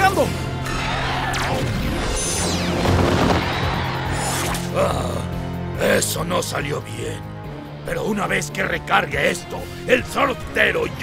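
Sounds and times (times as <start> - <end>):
action background music: 0.0 - 11.0
falling electronic sweep: 0.7 - 4.7.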